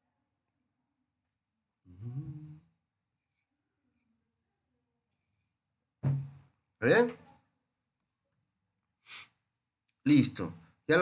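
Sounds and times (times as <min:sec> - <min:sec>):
short breath close to microphone: 0:09.0 - 0:09.4.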